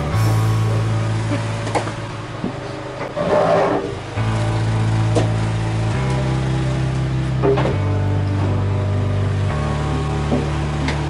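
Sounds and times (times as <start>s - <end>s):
background music with held chords: 0.0s - 2.9s, 4.0s - 11.0s.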